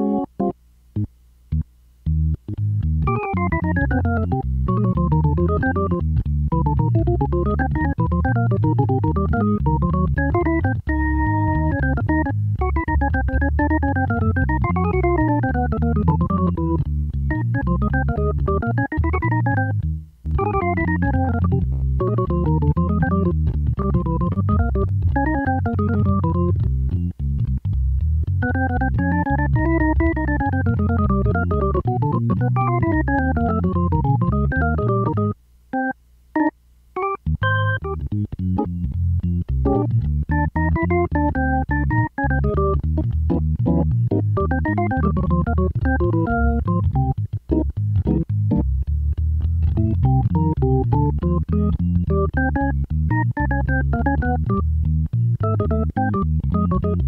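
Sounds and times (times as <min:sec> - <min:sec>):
jazz organ solo: 0:00.0 - 0:57.0.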